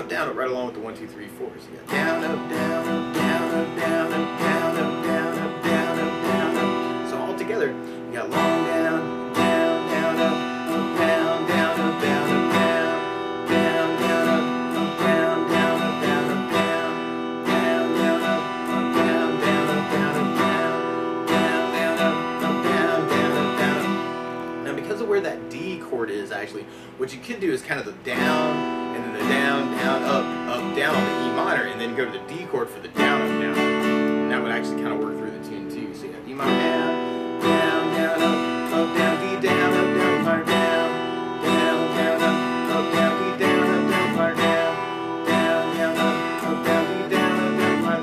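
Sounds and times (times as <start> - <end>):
acoustic guitar strumming: 0.0 - 48.0.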